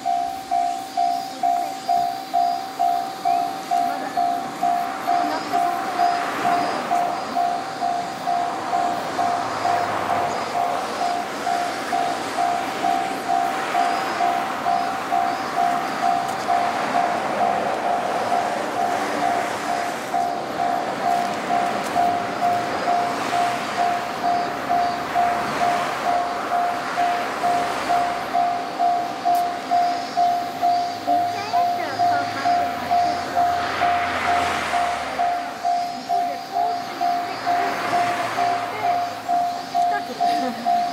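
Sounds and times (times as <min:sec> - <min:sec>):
level crossing warning bell: 0:00.0 - 0:40.9.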